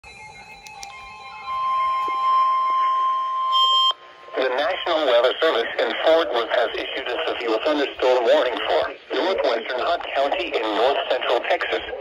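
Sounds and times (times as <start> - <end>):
weather radio alert tone: 0.3 - 12.0.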